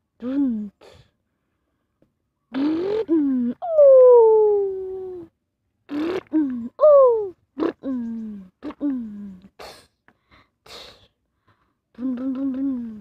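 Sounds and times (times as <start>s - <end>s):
person imitating truck engine: 2.5s - 5.3s, 5.9s - 9.8s, 12.0s - 13.0s.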